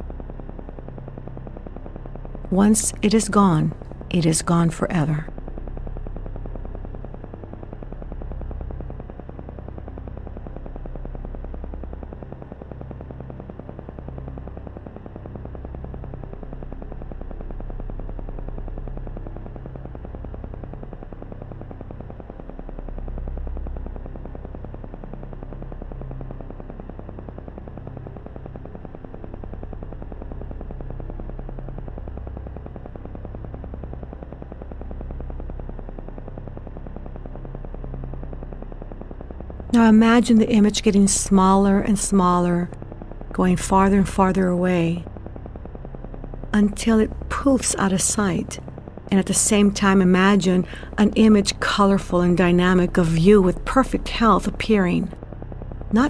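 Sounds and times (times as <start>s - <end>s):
ambient synthesizer drone music: 0.0s - 56.0s.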